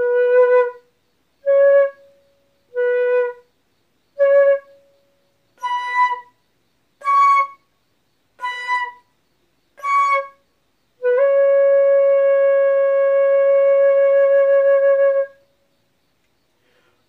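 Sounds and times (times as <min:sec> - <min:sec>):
solo flute playing slowly: 0:00.0 - 0:03.5, 0:04.2 - 0:06.4, 0:07.0 - 0:07.7, 0:08.4 - 0:09.1, 0:09.8 - 0:10.4, 0:11.0 - 0:15.5.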